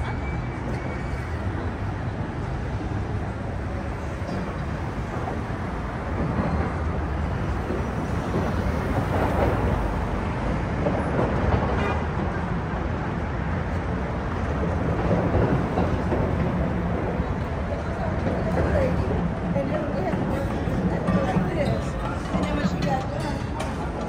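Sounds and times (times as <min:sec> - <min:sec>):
street traffic rushing: 0:00.0 - 0:24.0.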